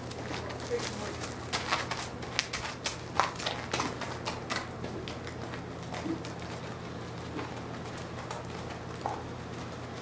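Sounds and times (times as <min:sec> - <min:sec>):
horse hooves on gravel: 0:00.0 - 0:10.0.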